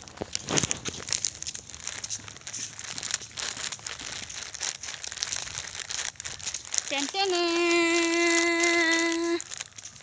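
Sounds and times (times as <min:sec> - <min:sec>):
crinkling and rustling: 0:00.0 - 0:10.0.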